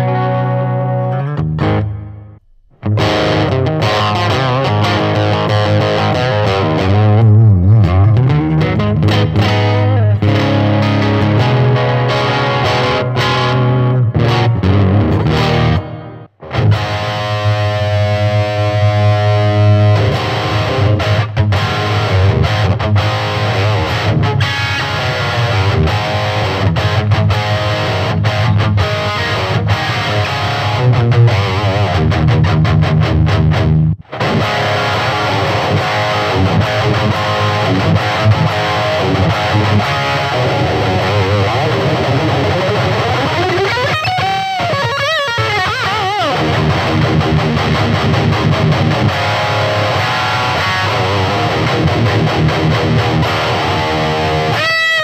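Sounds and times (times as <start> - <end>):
guitar chord ringing: 0.0 - 7.1, 7.8 - 32.1, 33.3 - 55.0
electric guitar through amplifier: 0.0 - 55.0.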